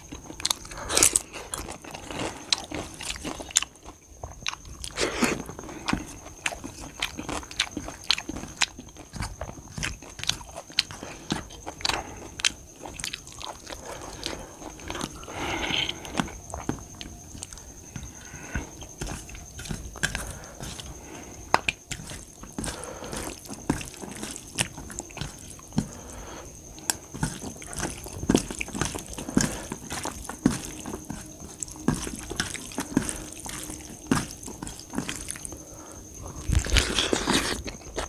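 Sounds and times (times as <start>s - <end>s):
person chewing food: 0.0s - 38.0s.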